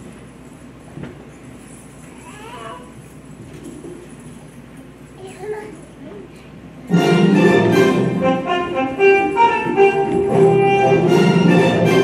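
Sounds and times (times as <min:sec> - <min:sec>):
murmur of the hall: 0:00.0 - 0:12.0.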